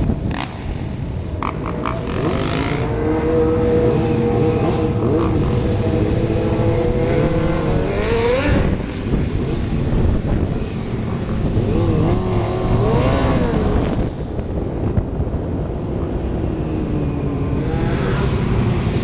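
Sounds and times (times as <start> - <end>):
motorcycle engine revving: 0.0 - 15.6, 17.3 - 19.0.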